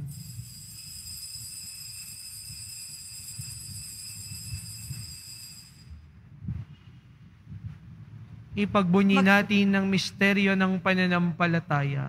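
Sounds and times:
altar bell ringing: 0.0s - 6.2s.

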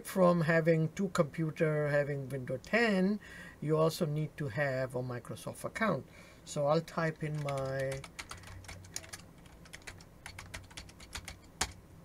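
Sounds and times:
computer keyboard typing: 7.1s - 11.8s.

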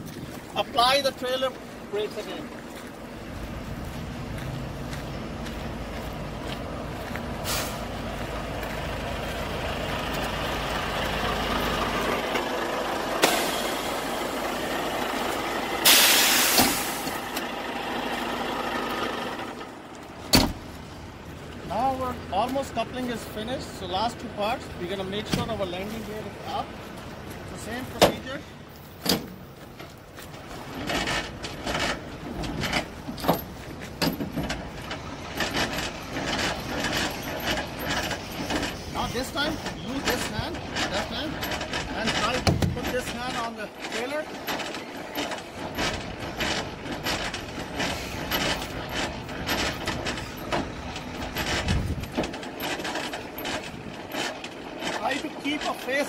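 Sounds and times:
crank clicking and rattling: 29.0s - 56.0s.

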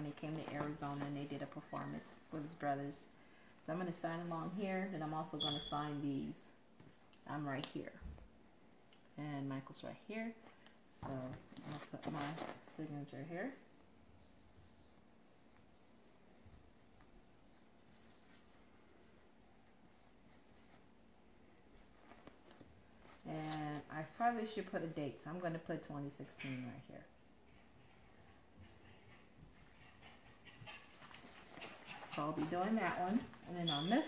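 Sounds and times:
photo prints rustling: 0.0s - 2.5s.

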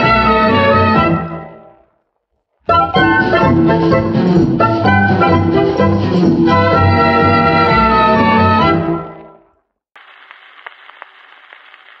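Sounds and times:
record surface hiss and crackle: 1.6s - 2.7s, 9.6s - 12.0s.

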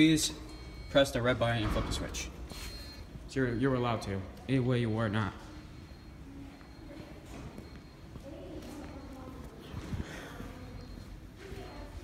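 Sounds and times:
faint voices: 1.5s - 12.0s.

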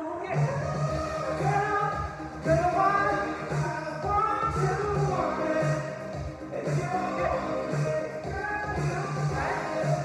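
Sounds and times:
dance song with sung vocals: 0.0s - 10.0s
steady low beat: 0.5s - 10.0s.

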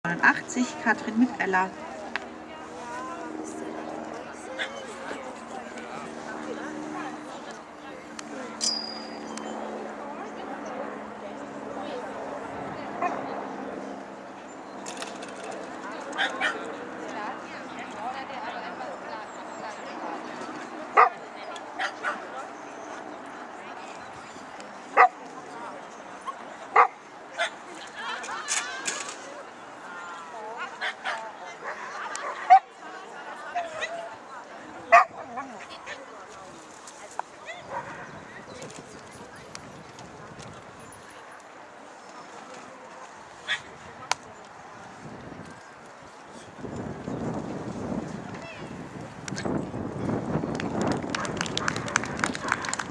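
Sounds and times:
murmur of voices: 0.0s - 52.9s
dog barking: 21.0s - 21.2s, 34.9s - 35.2s.

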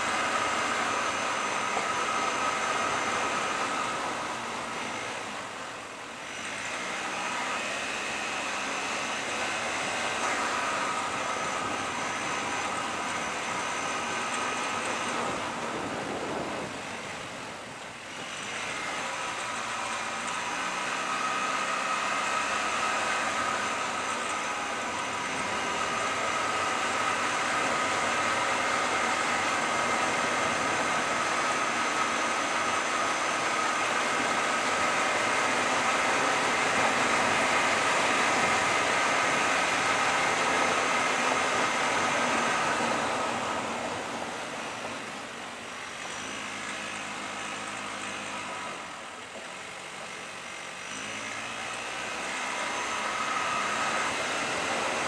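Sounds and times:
car engine and road noise: 0.0s - 55.0s
low engine hum: 0.0s - 55.0s.

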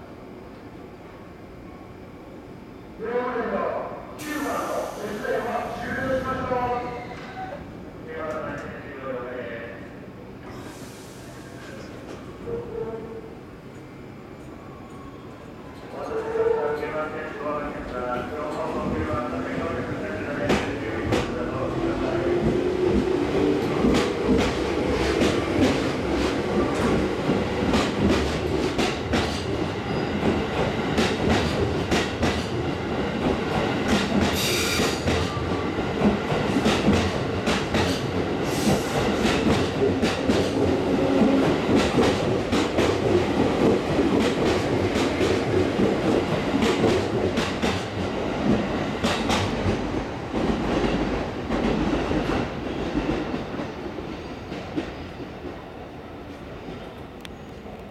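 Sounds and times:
electric train passing: 13.5s - 57.9s
train wheels clickety-clack: 20.4s - 55.7s.

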